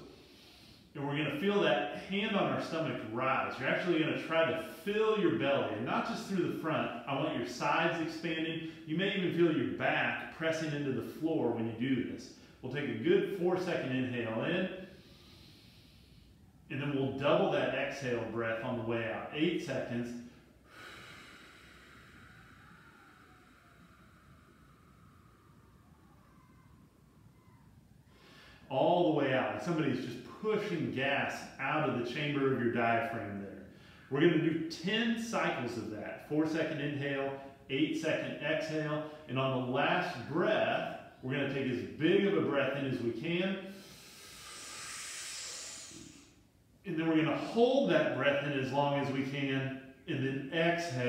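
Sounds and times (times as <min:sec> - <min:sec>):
man inhaling deeply through nose: 0:00.0 - 0:01.0, 0:14.8 - 0:16.5, 0:20.2 - 0:25.8, 0:28.1 - 0:28.7, 0:43.7 - 0:46.5
slow exhale: 0:00.0 - 0:01.0, 0:14.8 - 0:16.7, 0:20.2 - 0:28.7, 0:33.6 - 0:34.1, 0:43.6 - 0:46.8.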